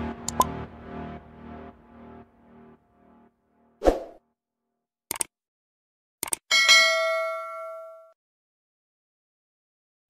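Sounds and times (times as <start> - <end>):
notification bell ding: 6.5 - 8.2.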